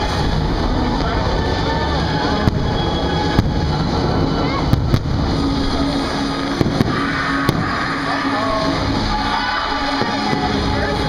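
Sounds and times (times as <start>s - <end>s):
fireworks low rumble: 0.0s - 11.0s
fireworks sharp bangs: 2.0s - 8.0s.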